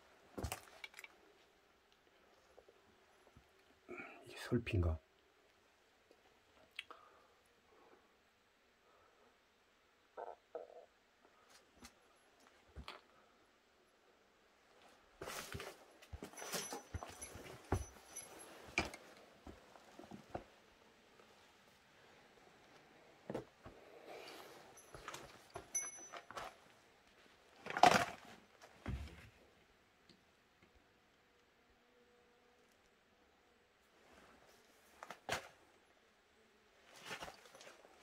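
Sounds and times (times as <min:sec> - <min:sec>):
scrapes and rustles of handling: 0:14.8 - 0:29.4, 0:36.8 - 0:38.0.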